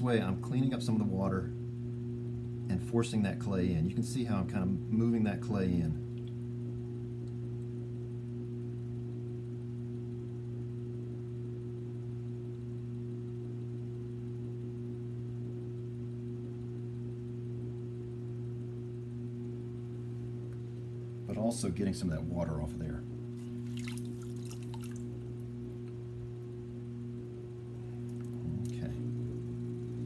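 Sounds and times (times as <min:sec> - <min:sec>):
potter's wheel motor humming: 0:00.0 - 0:30.0.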